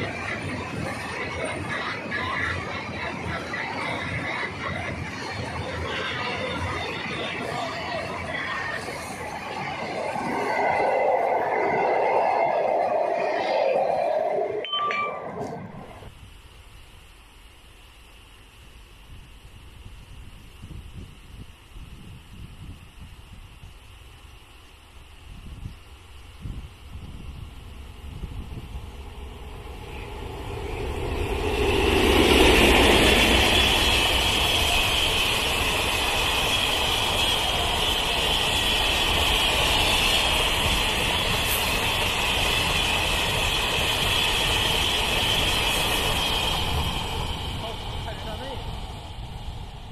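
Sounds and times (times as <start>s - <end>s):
train wheels rumbling on track: 0.0s - 13.2s, 25.4s - 49.9s
freight train rolling past: 0.0s - 16.1s, 25.9s - 49.9s.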